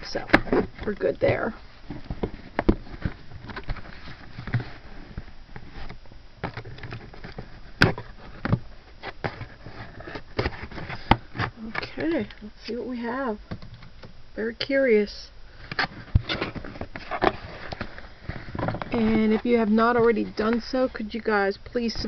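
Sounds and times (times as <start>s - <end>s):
cardboard flaps rustling: 0.0s - 12.3s, 15.8s - 21.0s.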